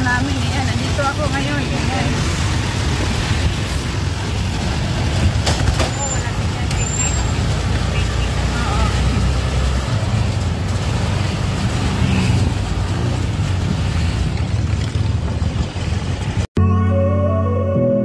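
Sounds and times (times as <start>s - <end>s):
tricycle engine rumble: 0.0s - 16.5s
road noise: 0.0s - 17.6s
surrounding traffic: 0.0s - 18.0s.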